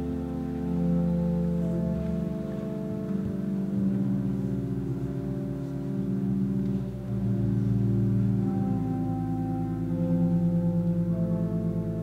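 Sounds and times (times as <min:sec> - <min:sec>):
pipe organ playing sustained chords: 0:00.0 - 0:12.0.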